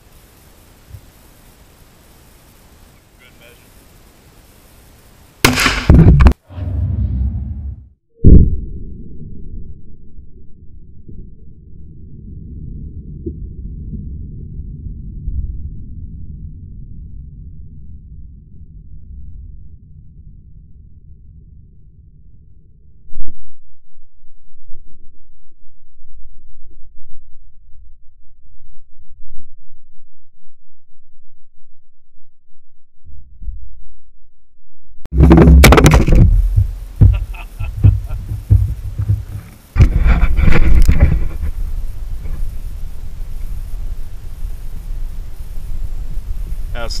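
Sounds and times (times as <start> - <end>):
faint outdoor background: 0.0 - 33.0, 35.1 - 47.0
loud revolver shot: 5.4 - 6.1
slowed revolver shot boom: 5.4 - 8.8
low rumbling with thuds: 5.4 - 9.3, 35.1 - 46.8.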